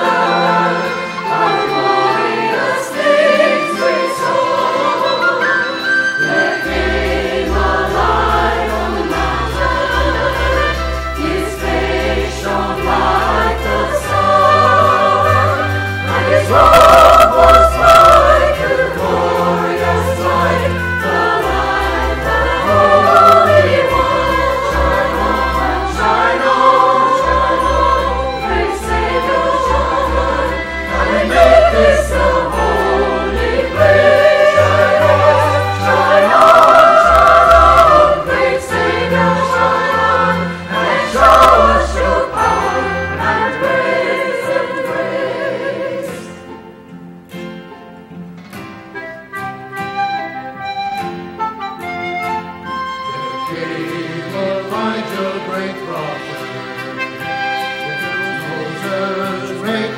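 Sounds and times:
choir singing in parts: 0.0 - 46.7, 52.3 - 59.9.

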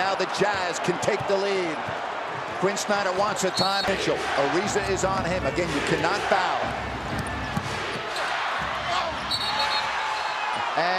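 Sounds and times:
crowd noise: 0.0 - 10.9.

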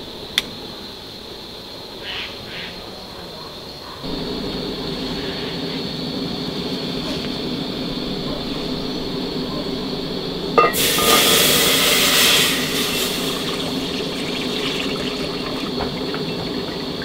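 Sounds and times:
faint igniter clicks: 0.3 - 0.5
gas burner hissing roar: 4.0 - 17.0.

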